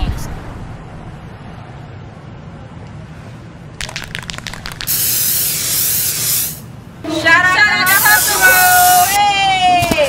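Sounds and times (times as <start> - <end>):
spray can ball rattling: 3.8 - 6.6
spray can hissing: 3.8 - 6.7, 7.9 - 9.2.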